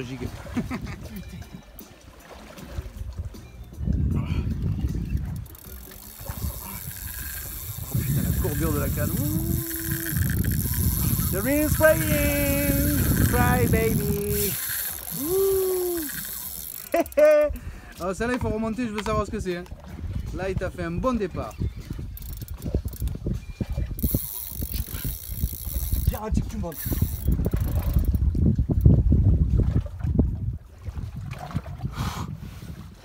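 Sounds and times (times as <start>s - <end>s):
wind buffeting microphone: 2.7s - 33.0s
fishing reel drag clicking and buzzing: 4.7s - 17.6s, 21.6s - 28.2s
person shouting: 15.2s - 16.2s.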